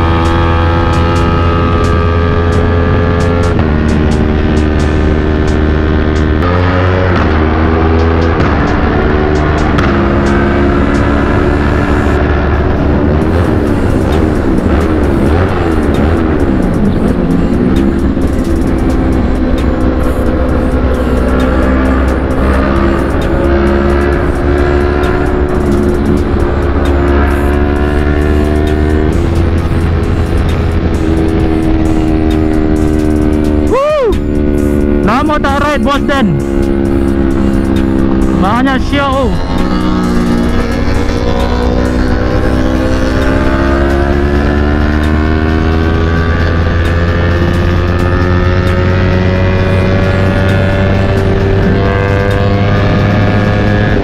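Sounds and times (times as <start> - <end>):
background music: 0.0 - 54.0
motorcycle engine at speed: 0.0 - 54.0.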